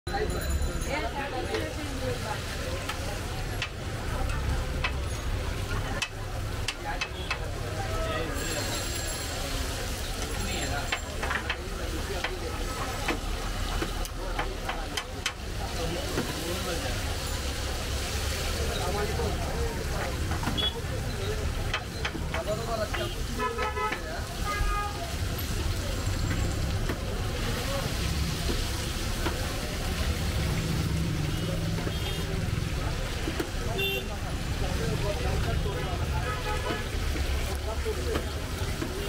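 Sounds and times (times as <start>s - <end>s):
background chatter: 0.0s - 39.0s
street traffic rumble: 0.0s - 39.0s
meat sizzling in oil: 8.5s - 33.2s.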